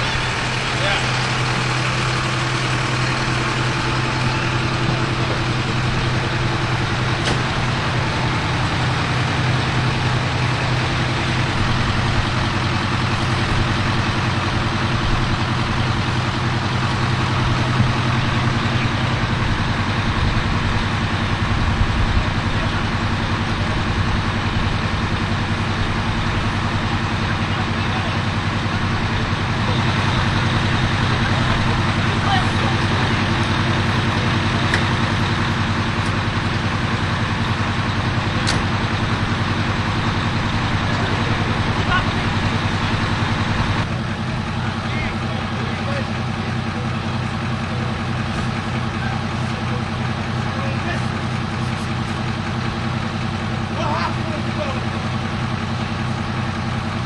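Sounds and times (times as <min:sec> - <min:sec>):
engine idling: 0:00.0 - 0:57.0.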